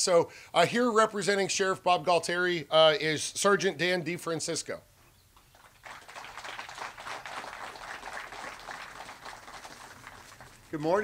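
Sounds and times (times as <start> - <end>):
audience applauding: 5.5 - 11.0.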